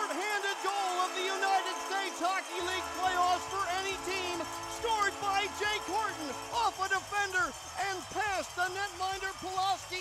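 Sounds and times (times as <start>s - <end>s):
man commentating: 0.0s - 10.0s.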